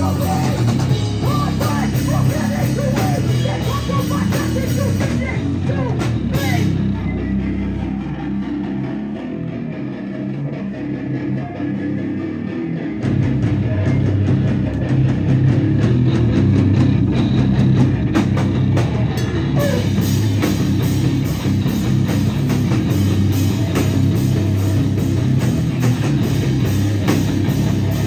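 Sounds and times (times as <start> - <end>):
drum kit: 0.0 - 28.0
electric guitar: 0.0 - 28.0
heavy rock band: 0.0 - 28.0.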